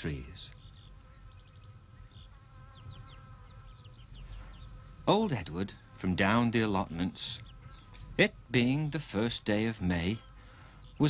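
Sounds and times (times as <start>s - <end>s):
bird chirps: 0.0s - 11.0s
bee buzzing: 0.7s - 5.0s.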